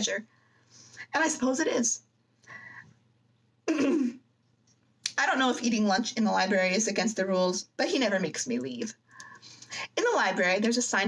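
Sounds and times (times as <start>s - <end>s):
woman clearing her throat: 3.7s - 4.2s.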